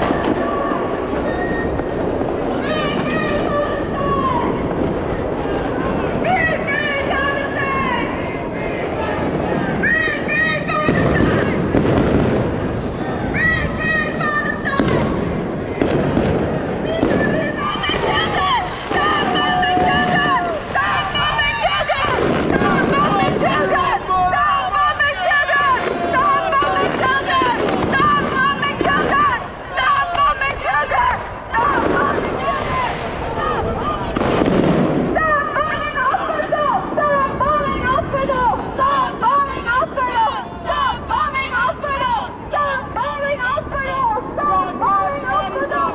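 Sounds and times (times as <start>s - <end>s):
dense background rumble: 0.0s - 45.9s
fireworks crackling and banging: 0.0s - 45.9s
people shouting: 0.0s - 45.9s.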